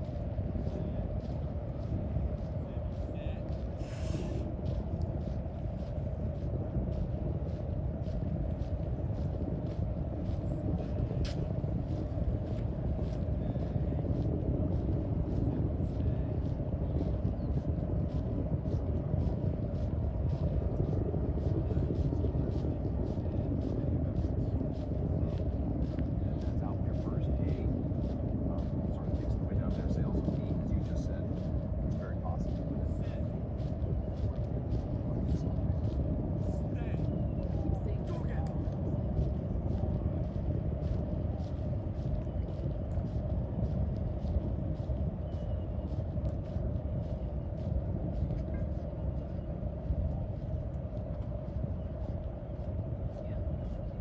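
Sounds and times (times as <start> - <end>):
footsteps on paved path: 0.0 - 54.0
low outdoor rumble: 0.0 - 54.0.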